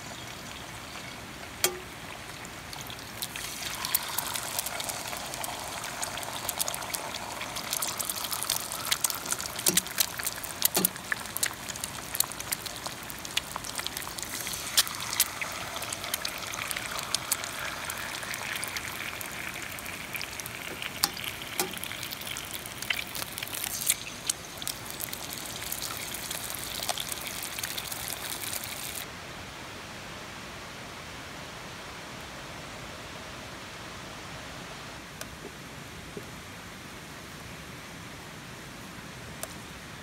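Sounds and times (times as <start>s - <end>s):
eggs sizzling in oil: 0.0s - 29.1s.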